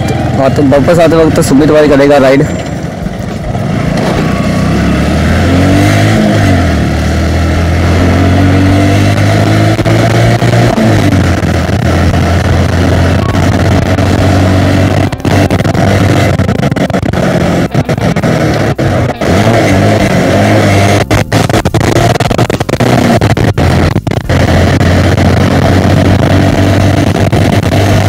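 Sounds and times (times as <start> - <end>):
motorcycle engine running: 0.0 - 28.0
wind noise on microphone: 2.8 - 28.0.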